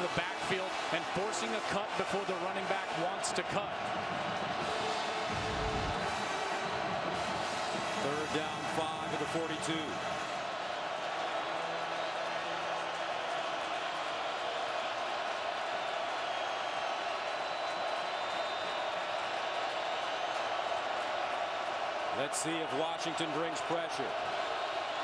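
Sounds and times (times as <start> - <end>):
stadium crowd roaring: 0.0 - 25.0.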